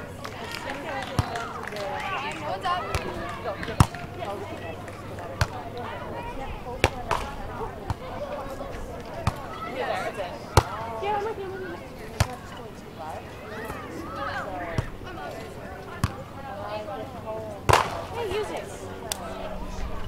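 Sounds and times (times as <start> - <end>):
voices talking in background: 0.0 - 20.0
volleyball hand slaps: 4.9 - 5.6, 6.8 - 8.1, 17.7 - 18.2.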